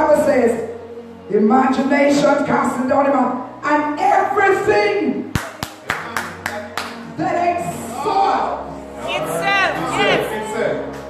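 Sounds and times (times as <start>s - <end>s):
sharp hand claps: 5.3s - 7.0s.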